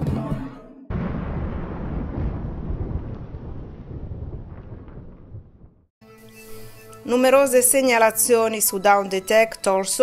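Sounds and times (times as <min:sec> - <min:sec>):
low rumbling sound effect: 0:00.9 - 0:05.9.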